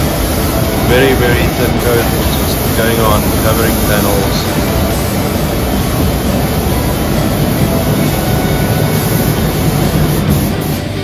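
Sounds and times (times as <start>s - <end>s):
rushing air of spray booth: 0.0s - 11.0s
spray gun hissing: 0.0s - 11.0s.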